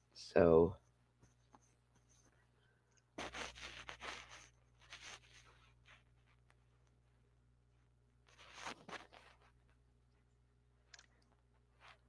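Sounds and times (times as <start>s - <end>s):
scratchy rustling noises: 0.8s - 2.5s, 3.2s - 6.8s, 8.2s - 9.9s, 11.6s - 12.0s.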